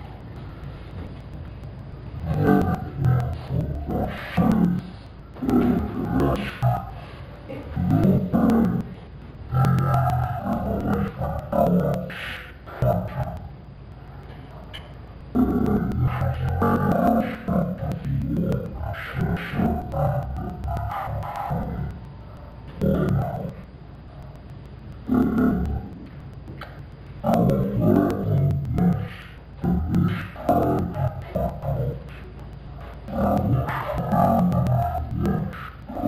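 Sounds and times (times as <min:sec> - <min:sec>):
low room background: 0:00.0 - 0:36.0
muffled echoing voice: 0:00.0 - 0:36.0.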